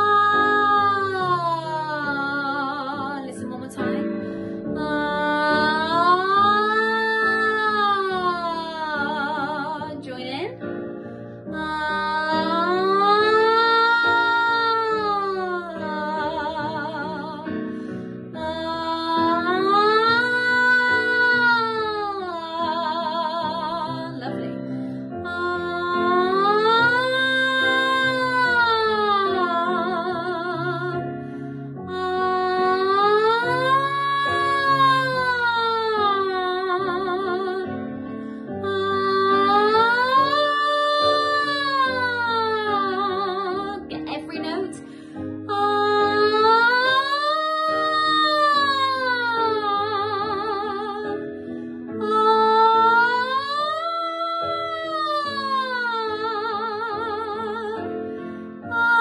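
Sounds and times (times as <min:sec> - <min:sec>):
woman singing vocal slide: 0:00.0 - 0:10.7, 0:11.3 - 0:59.0.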